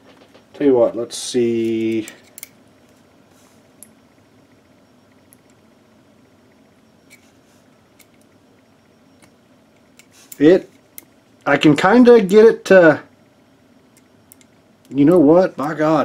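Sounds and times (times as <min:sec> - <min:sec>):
small metallic clicks: 0:01.8 - 0:02.6, 0:13.9 - 0:15.0.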